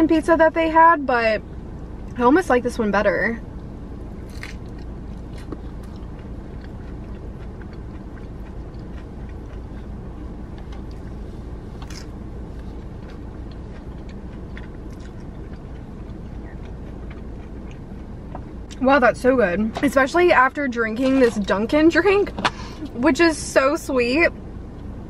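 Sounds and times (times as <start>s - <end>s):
low hum inside car: 0.0s - 25.0s
person chewing and crunching: 4.2s - 18.8s.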